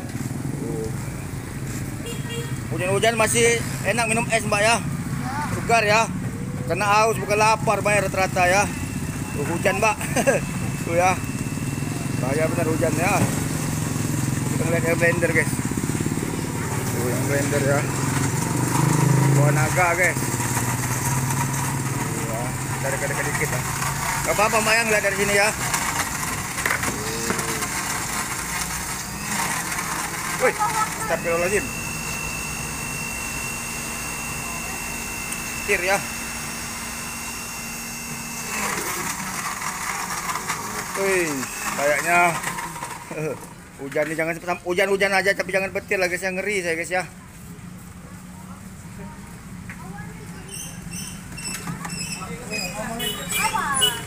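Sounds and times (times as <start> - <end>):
small motorcycle engines droning: 0.0 - 54.0
electric blender running: 6.7 - 43.6.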